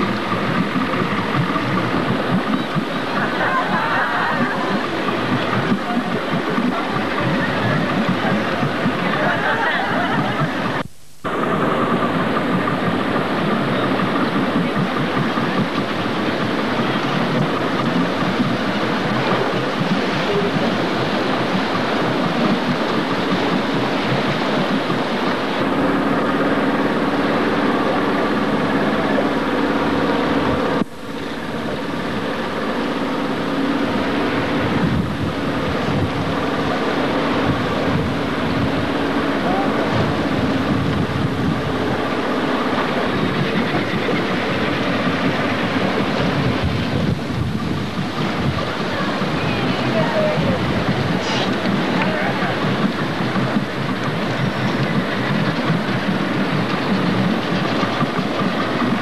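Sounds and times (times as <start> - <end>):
boat engine running: 0.0 - 59.0
faint voices: 0.0 - 59.0
sea noise: 0.0 - 59.0
wind: 0.0 - 59.0.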